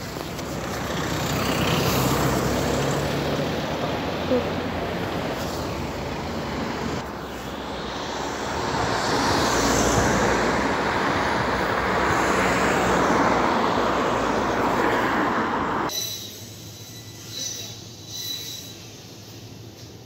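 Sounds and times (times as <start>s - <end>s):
road traffic passing: 0.0s - 16.9s.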